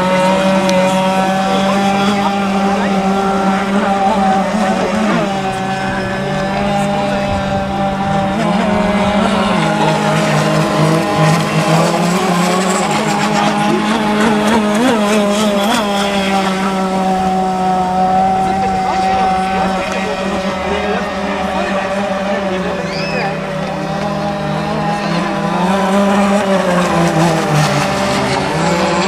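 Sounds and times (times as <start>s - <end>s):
speedboat motor droning: 0.0s - 29.0s.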